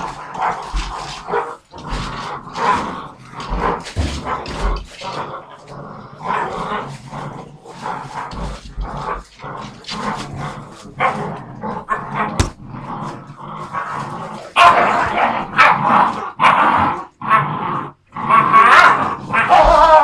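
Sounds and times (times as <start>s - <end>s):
puppies growling and yipping: 0.0s - 20.0s.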